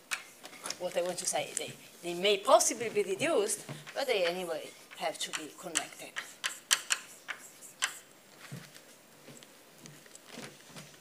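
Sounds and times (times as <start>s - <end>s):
chalk tapping on blackboard: 3.7s - 8.1s.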